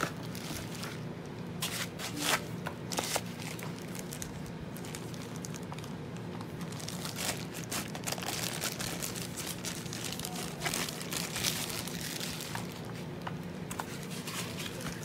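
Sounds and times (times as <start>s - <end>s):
plastic bag crinkling: 0.0s - 15.0s.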